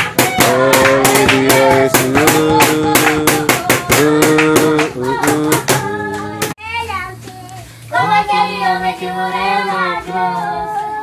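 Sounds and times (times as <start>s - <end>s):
rhythmic hand clapping: 0.0s - 6.6s
single voice singing: 0.0s - 6.6s, 7.9s - 11.0s
children singing: 7.9s - 11.0s.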